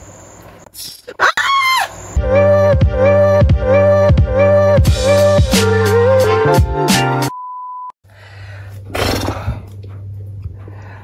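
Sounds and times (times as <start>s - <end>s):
music: 2.2s - 7.4s
low steady hum: 8.1s - 11.0s.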